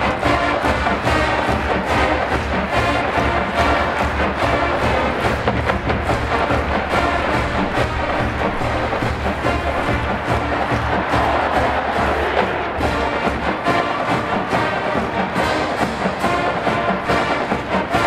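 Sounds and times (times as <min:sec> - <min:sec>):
marching band playing: 0:00.0 - 0:18.0.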